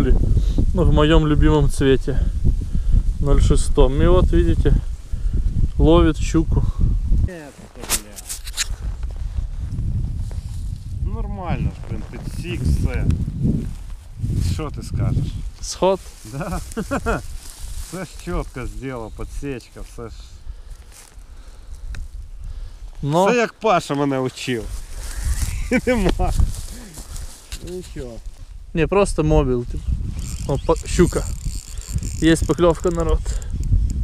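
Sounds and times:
wind rumbling on microphone: 0.0s - 23.1s, 24.6s - 34.0s
sharp rustles or clicks: 7.8s - 8.8s, 30.2s - 33.8s.

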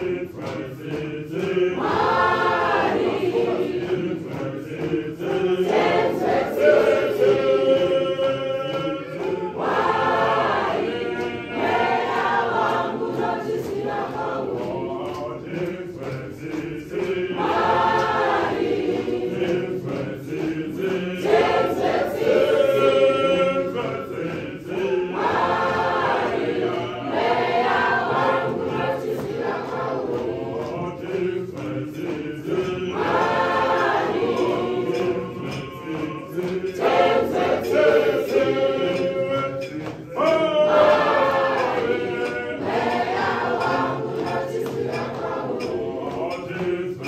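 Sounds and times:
church choir singing: 0.0s - 47.0s.

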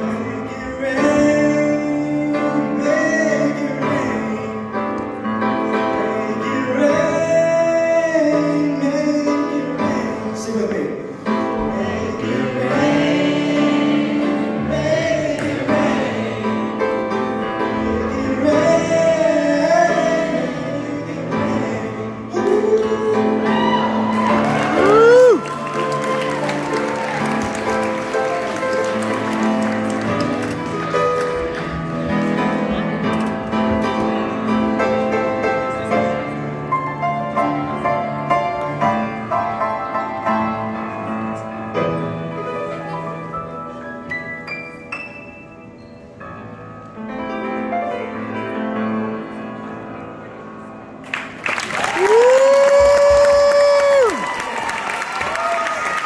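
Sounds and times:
upright piano chords: 0.0s - 54.6s
person cheering: 23.4s - 27.9s, 51.7s - 56.0s
audience applauding: 23.6s - 31.9s, 51.0s - 56.0s.

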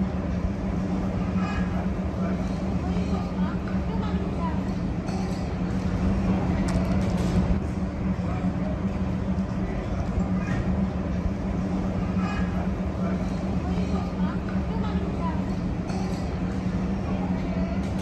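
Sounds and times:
indistinct chatter of diners: 0.0s - 18.0s
steady low hum: 0.0s - 18.0s.

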